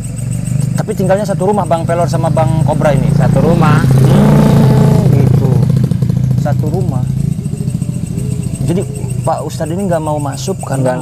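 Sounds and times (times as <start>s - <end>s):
small engine idling: 0.0s - 11.0s.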